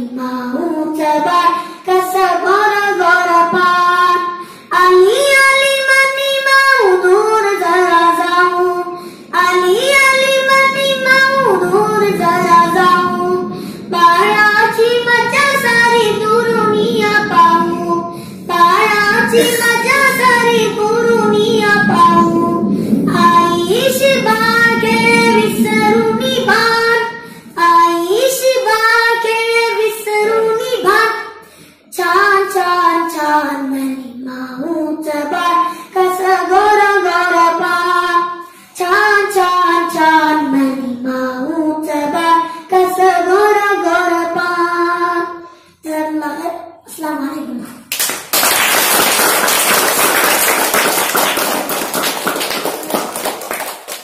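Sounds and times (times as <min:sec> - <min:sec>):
boy singing unaccompanied: 0:00.0 - 0:47.7.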